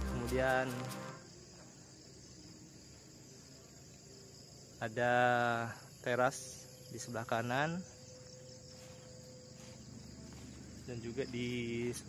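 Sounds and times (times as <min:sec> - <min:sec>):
crickets chirring: 0:00.0 - 0:12.0.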